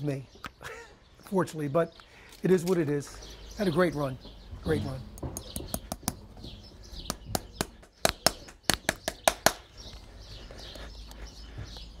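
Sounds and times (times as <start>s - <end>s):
hammer tapping on steel horseshoe: 5.2s - 6.2s.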